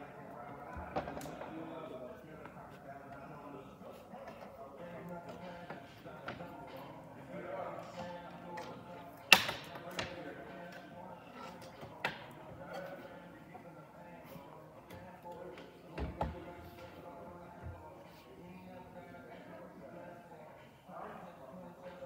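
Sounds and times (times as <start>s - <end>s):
faint voices: 0.0s - 22.0s.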